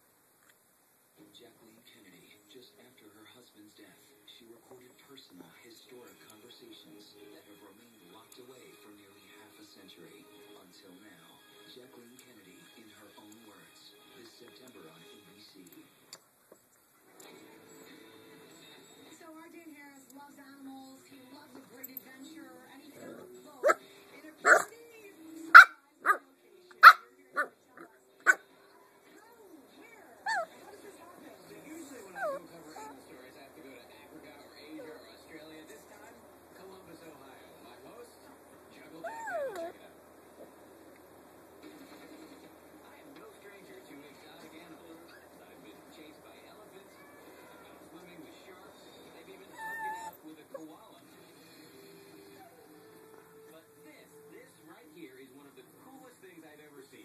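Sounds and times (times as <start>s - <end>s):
faint small noises: 0.0s - 9.3s
puppy barking: 24.4s - 24.7s, 25.5s - 26.2s, 26.8s - 27.6s, 28.2s - 28.5s, 30.2s - 30.8s, 32.0s - 33.1s, 39.0s - 39.8s, 49.5s - 50.2s
puppy whining: 28.2s - 33.3s, 34.4s - 36.2s, 38.9s - 39.8s, 46.8s - 47.9s, 49.4s - 50.7s, 51.7s - 53.5s.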